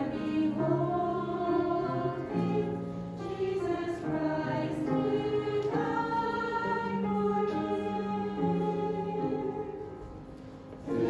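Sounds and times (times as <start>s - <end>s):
choir singing a hymn: 0.0s - 11.0s
grand piano: 0.0s - 11.0s.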